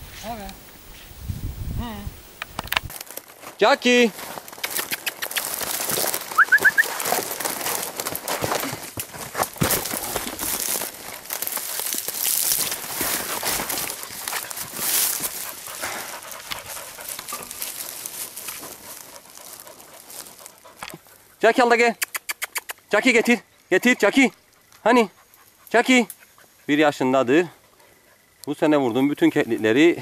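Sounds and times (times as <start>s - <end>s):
brush crackling underfoot: 2.3s - 21.4s
quick rising chirps: 6.3s - 7.0s.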